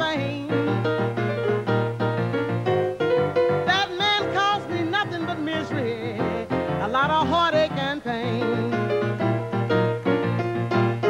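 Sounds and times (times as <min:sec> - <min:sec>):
piano: 0:00.0 - 0:11.0
wordless melodic line: 0:00.0 - 0:11.0.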